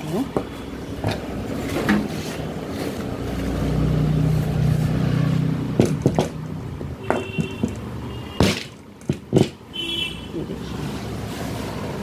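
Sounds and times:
sharp knocks: 5.7 - 9.7.

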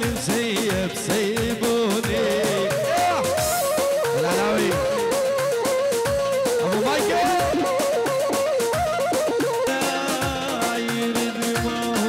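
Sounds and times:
steady drum beat: 0.0 - 12.0
ornamented folk melody: 0.2 - 12.0.

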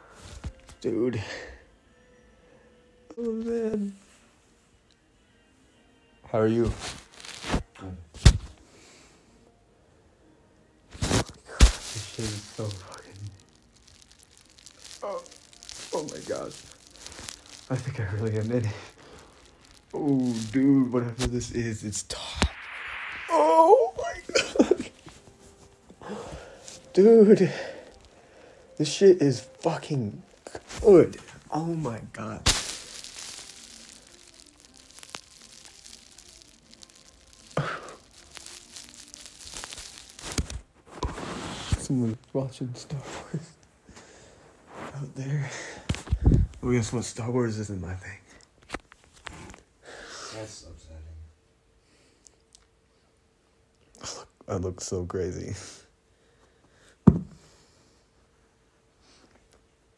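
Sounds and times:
low room hiss: 0.0 - 59.9
man's voice: 11.7 - 13.4, 17.7 - 18.9, 20.0 - 22.6, 23.2 - 24.9, 26.1 - 27.8, 28.8 - 32.5.

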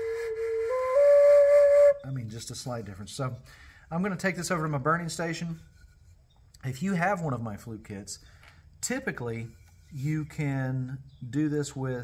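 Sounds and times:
breathy flute tone: 0.0 - 2.0.

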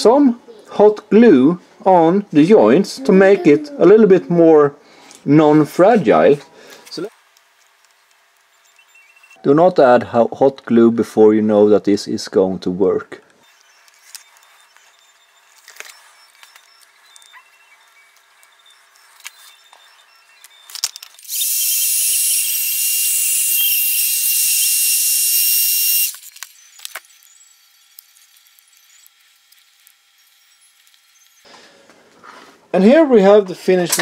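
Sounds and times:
heat gun hissing: 21.2 - 31.5.

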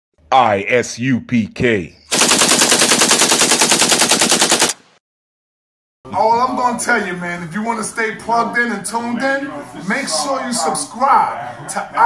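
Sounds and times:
rapid automatic gunfire: 2.1 - 5.0.

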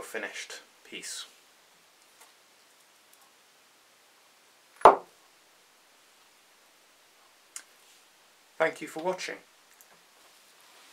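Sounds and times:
metal medal knocking on wood: 4.8 - 5.1.

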